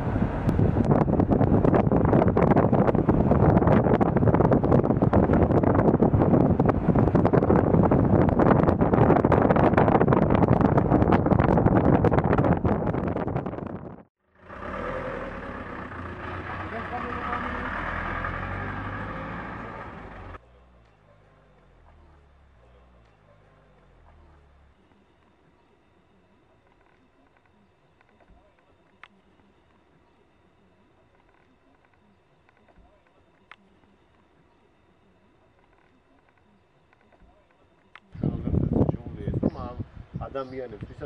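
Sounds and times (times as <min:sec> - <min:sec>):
car rumbling on rough road: 0:00.0 - 0:24.8
people talking: 0:16.3 - 0:17.7, 0:19.5 - 0:41.0.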